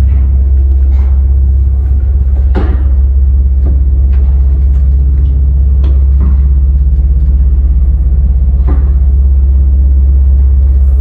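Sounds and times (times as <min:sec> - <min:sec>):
elevator deep hum: 0:00.0 - 0:11.0.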